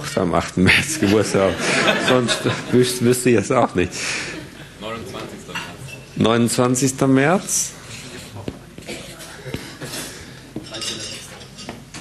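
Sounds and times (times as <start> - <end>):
glasses and cutlery clinking: 5.4 - 6.2, 9.8 - 12.0.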